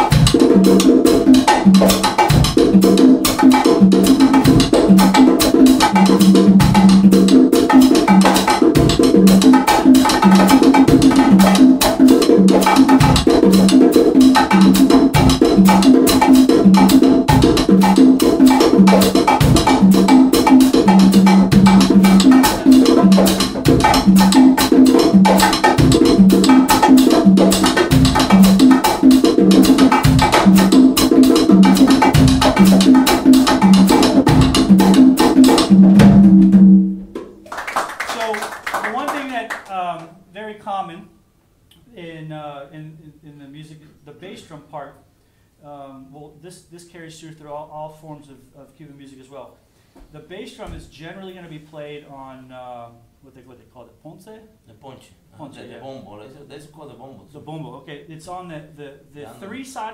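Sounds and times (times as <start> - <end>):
low drum tones: 0.0 - 37.4.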